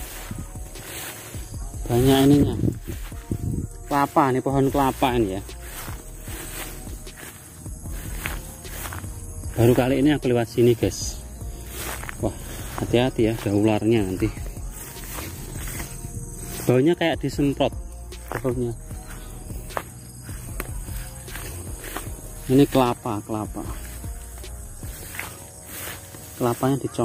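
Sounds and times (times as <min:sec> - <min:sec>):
footsteps in long grass: 0:00.0 - 0:27.0
insect drone: 0:00.0 - 0:27.0
stalks rustling: 0:00.0 - 0:27.0.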